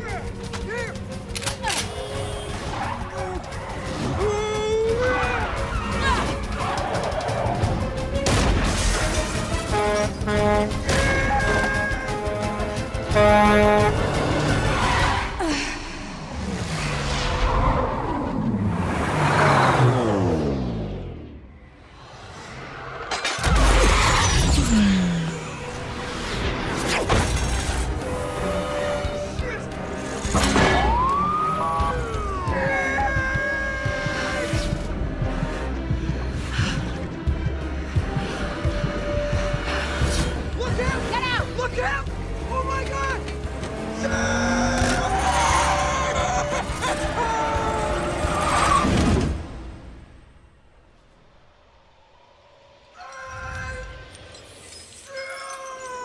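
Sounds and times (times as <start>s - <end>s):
car engines passing: 16.1s - 23.1s
police sirens: 30.6s - 33.2s.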